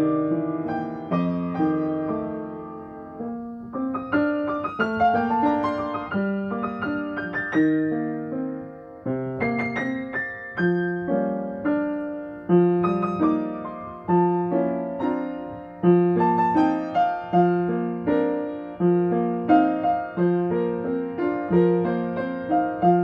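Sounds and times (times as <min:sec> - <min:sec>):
piano playing chords: 0:00.0 - 0:23.0.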